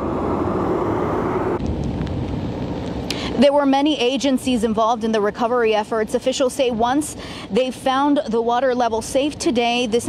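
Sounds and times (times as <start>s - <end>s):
motor vehicle rumbling: 0.0s - 4.7s
faint hum: 0.0s - 8.1s.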